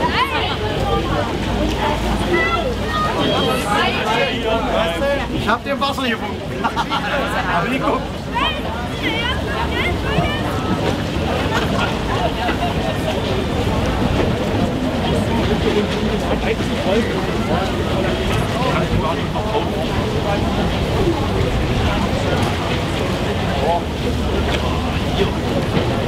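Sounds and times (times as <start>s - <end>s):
passengers chattering: 0.0s - 26.0s.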